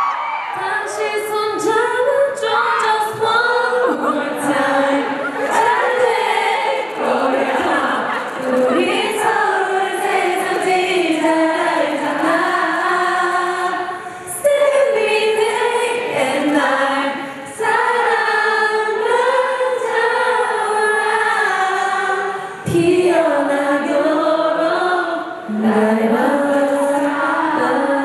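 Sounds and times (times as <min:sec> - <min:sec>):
many voices singing together: 0:00.0 - 0:28.0.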